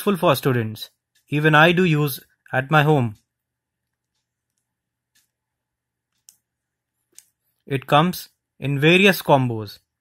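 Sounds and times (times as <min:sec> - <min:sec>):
faint plastic clicks: 0:06.1 - 0:07.7.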